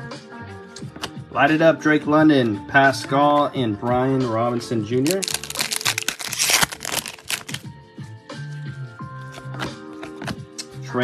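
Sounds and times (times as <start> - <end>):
foil wrapper tearing and crinkling: 5.0 - 7.7.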